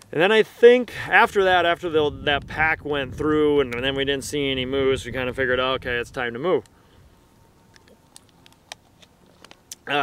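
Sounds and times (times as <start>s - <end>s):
plastic water bottle crinkling: 7.7s - 9.8s.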